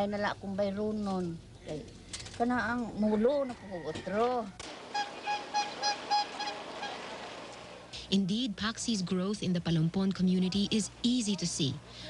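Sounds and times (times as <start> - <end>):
short honks: 4.9 - 7.1.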